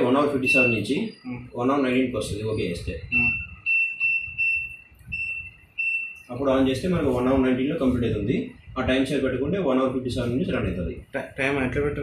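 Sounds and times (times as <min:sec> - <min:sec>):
washing machine control panel beeping: 0:00.3 - 0:00.9, 0:03.1 - 0:06.4.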